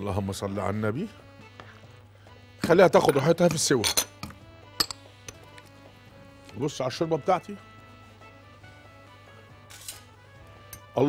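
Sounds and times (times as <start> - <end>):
quiet background music: 0.0 - 11.0
metal spoon clinking against pot: 3.1 - 5.6.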